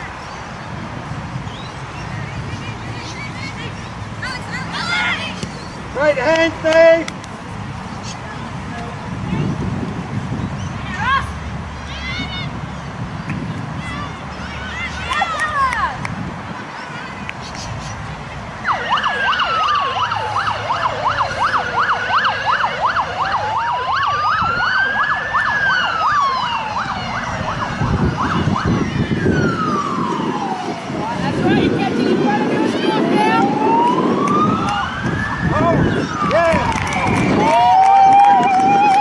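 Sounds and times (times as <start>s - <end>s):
siren yelping tone: 18.6s - 30.8s, 32.8s - 36.4s
siren wailing: 18.6s - 39.0s.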